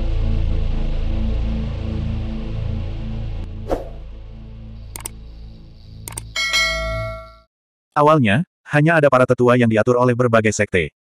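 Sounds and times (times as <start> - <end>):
low hum: 0.0 - 7.4
quick clicks: 4.9 - 5.2, 6.0 - 6.4
bright bell ding: 6.4 - 7.5.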